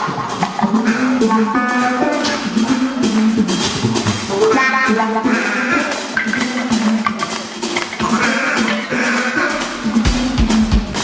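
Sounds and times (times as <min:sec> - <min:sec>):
drum hits: 0:00.0 - 0:11.0
electric bass: 0:00.0 - 0:11.0.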